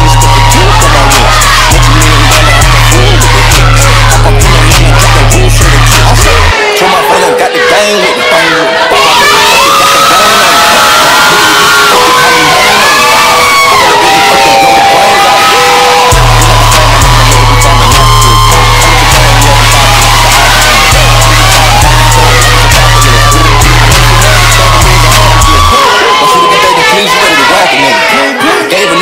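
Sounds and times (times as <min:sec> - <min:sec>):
fast ticking beat: 0:00.0 - 0:06.5, 0:16.1 - 0:25.7
heavy bass line: 0:00.0 - 0:06.6, 0:15.0 - 0:25.9
audience cheering and whooping: 0:00.0 - 0:29.0
loud hip hop music: 0:00.0 - 0:29.0.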